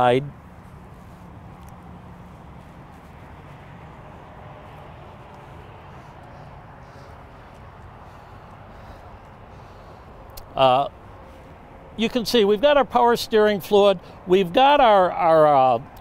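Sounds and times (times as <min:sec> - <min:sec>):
outdoor background noise: 0:00.0 - 0:16.0.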